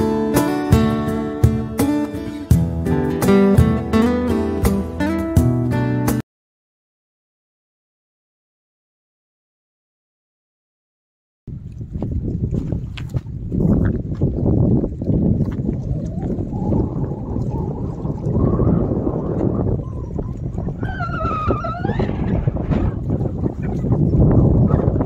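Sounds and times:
waves lapping against rocks: 11.5 - 25.0
wind buffeting microphone: 11.5 - 25.0.

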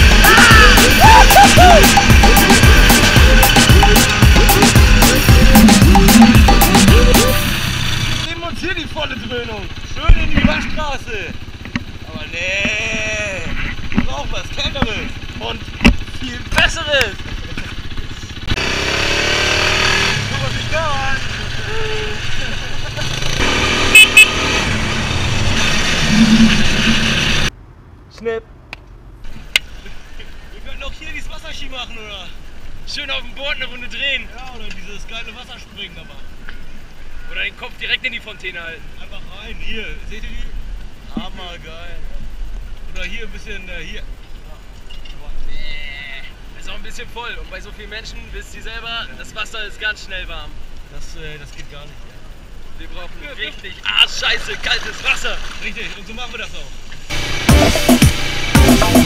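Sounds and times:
indistinct voices: 0.0 - 8.3, 20.1 - 27.5
quad bike engine: 0.0 - 27.6, 57.1 - 59.0.

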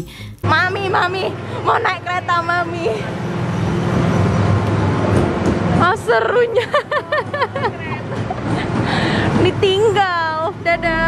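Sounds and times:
road train engine hum: 0.5 - 11.0.

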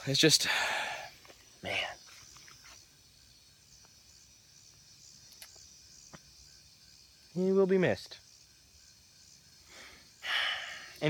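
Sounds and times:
crickets chirping: 0.0 - 11.0.

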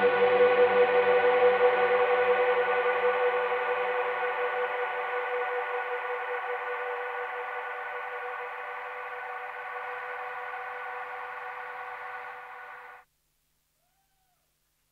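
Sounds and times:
electronic ambient drone: 0.0 - 13.0.

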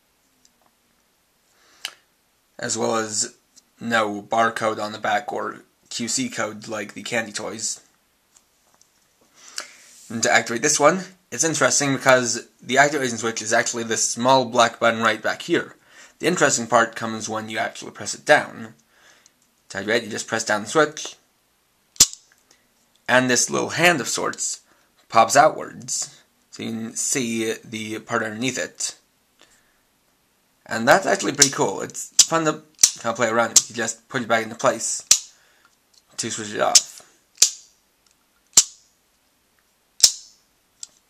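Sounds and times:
toy plastic snap: 22.0 - 22.3, 32.2 - 33.7, 35.0 - 35.3, 36.7 - 37.7, 38.5 - 38.8, 40.0 - 41.0.

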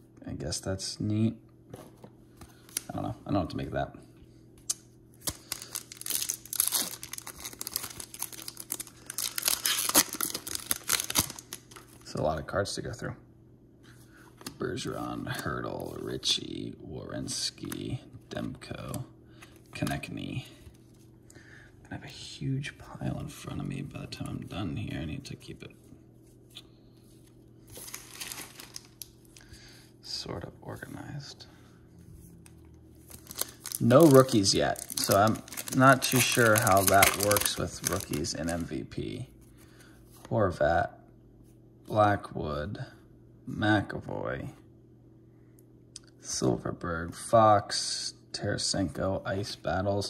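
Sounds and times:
card pack wrapper crinkling: 4.7 - 12.2, 27.7 - 29.5, 33.1 - 38.7.

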